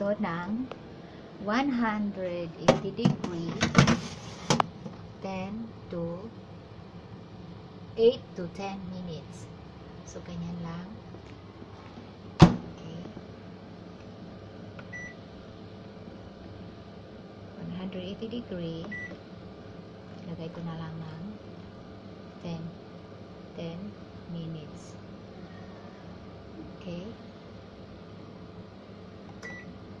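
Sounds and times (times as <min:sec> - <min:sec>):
steady low hum: 0:00.0 - 0:30.0
oven electronic beep: 0:14.9 - 0:15.2, 0:18.8 - 0:19.2, 0:29.4 - 0:29.8.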